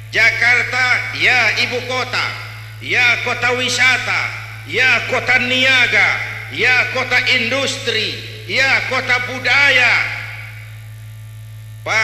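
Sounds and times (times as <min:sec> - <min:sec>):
steady low hum: 0:00.0 - 0:12.0
man speaking over loudspeaker: 0:00.1 - 0:10.7.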